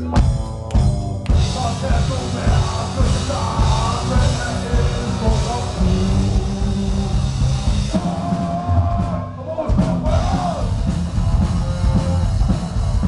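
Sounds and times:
person singing: 0.0 - 10.8
heavy metal band playing: 0.0 - 13.0.

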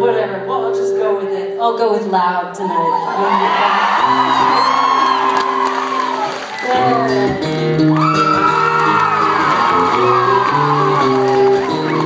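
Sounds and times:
acoustic guitar: 0.0 - 12.0
audience whooping and cheering: 2.8 - 12.0.

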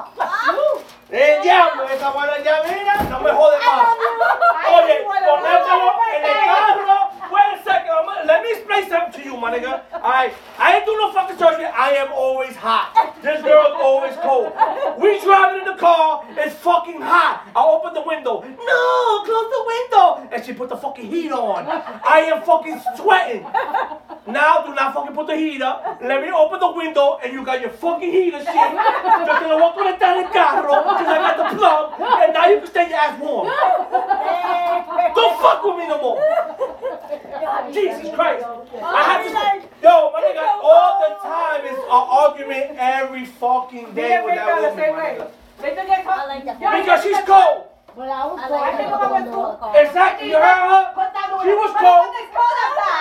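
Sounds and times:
people laughing: 0.0 - 19.4, 21.0 - 27.1, 27.8 - 43.2, 50.0 - 53.0
people talking: 0.0 - 53.0.

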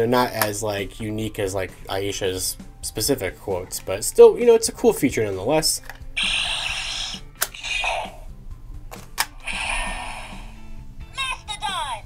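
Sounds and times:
sharp electronic hits: 6.2 - 8.3
toy electronic whooshing effects: 6.2 - 8.3, 9.4 - 10.5.

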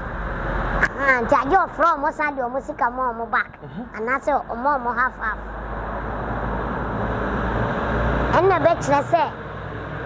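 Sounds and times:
road vehicle passing: 0.0 - 10.0.

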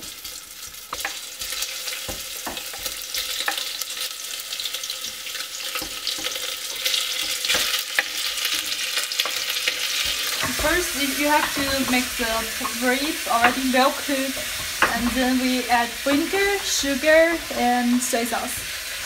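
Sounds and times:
ginger sizzling in hot oil: 0.0 - 19.0
wooden spatula stirring: 5.7 - 19.0.

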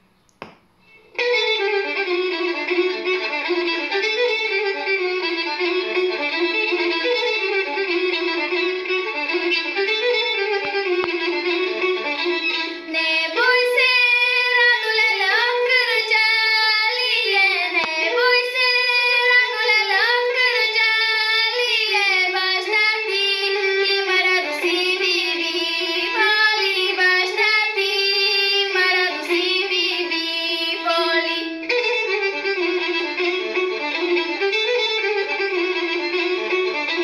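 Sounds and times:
girl singing folk song: 12.8 - 32.2.

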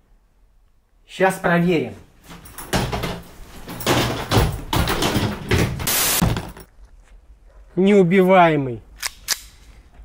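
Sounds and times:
suitcase knocking and clattering: 2.3 - 6.7
short burst of hiss: 5.9 - 6.2.

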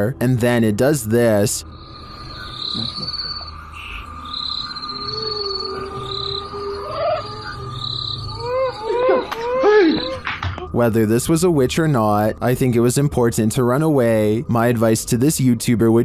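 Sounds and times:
insects chirping: 0.0 - 16.0
thin steady tone: 0.0 - 16.0
short rising and falling cries: 1.6 - 10.3.

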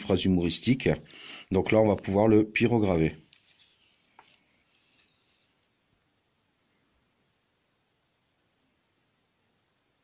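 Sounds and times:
person speaking: 0.0 - 4.4
soft rustle of hands: 3.2 - 5.9.

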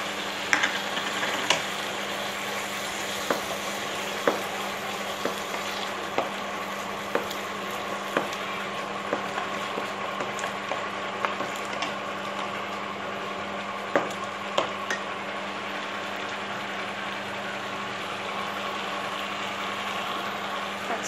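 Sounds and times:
food sizzling in a pan: 0.0 - 21.0.

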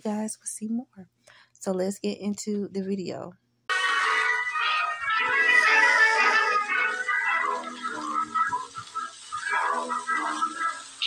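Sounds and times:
old radio playing music: 3.7 - 11.0.

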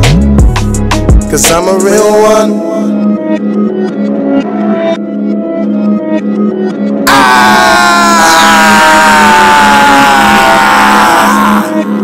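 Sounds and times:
rap beat: 0.0 - 2.3.

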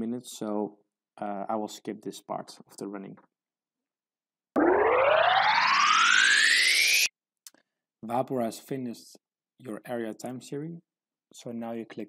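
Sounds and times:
rising fast-forward tone: 4.6 - 7.1.

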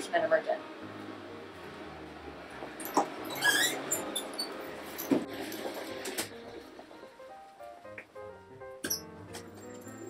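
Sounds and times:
shoe sole squeak: 3.0 - 4.6, 8.8 - 9.1.

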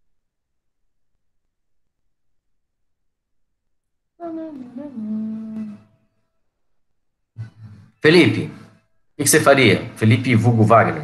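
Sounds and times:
man humming: 4.2 - 5.9.

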